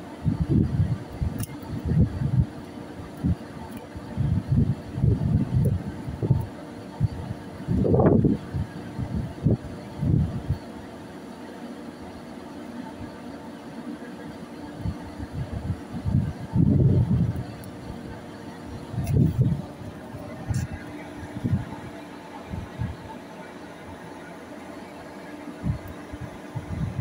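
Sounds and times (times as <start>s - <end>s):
ship machinery hum: 0.0s - 27.0s
wind buffeting microphone: 0.2s - 10.6s, 14.8s - 23.1s, 25.6s - 27.0s.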